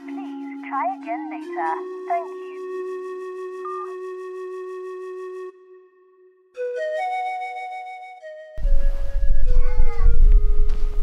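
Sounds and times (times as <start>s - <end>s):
background music low notes: 0.0s - 11.0s
deep steady rumble: 8.6s - 11.0s.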